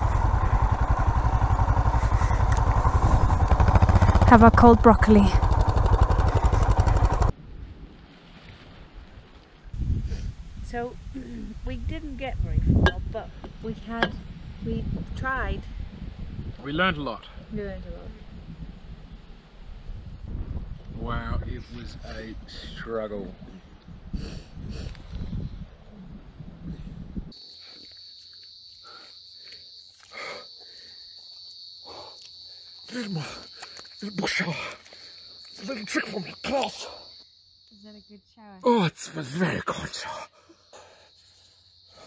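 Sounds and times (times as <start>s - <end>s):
indistinct talking: 0.0s - 7.3s
insects trilling: 0.0s - 7.3s, 27.3s - 42.0s
wind rumbling on microphone: 0.0s - 27.4s.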